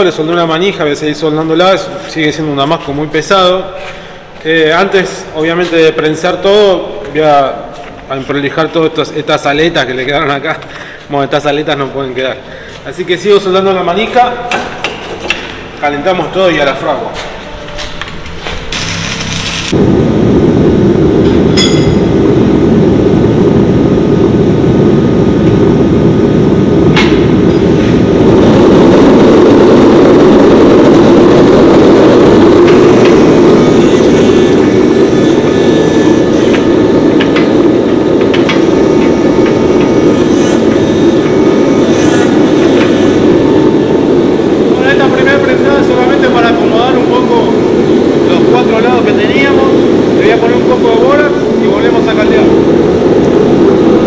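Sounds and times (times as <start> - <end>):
gas forge burner rushing: 0.0 - 54.0.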